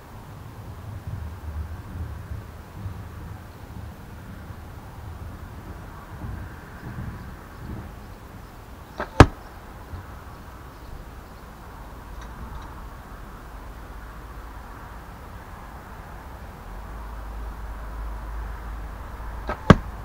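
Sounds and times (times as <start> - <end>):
arrow smacking target: 9.0 - 9.4, 19.4 - 19.9.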